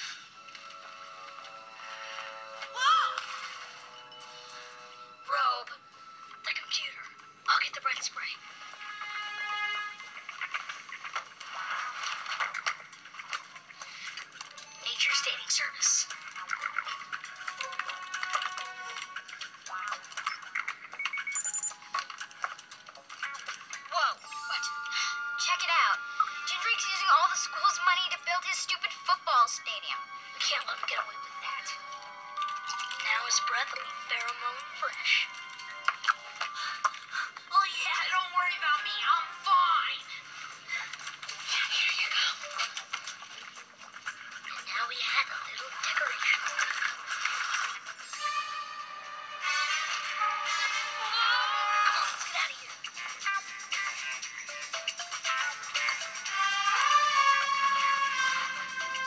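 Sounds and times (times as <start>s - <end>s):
electronic computer beeps: 20.2s - 22.0s.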